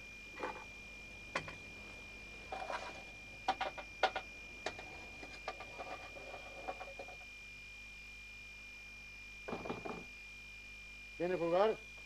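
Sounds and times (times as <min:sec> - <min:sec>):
faint steady hum: 0:00.0 - 0:12.0
knocks on a door: 0:09.5 - 0:10.0.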